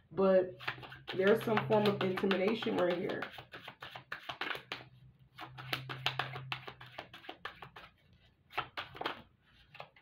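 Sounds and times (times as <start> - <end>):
cards being shuffled: 0.6 - 10.0.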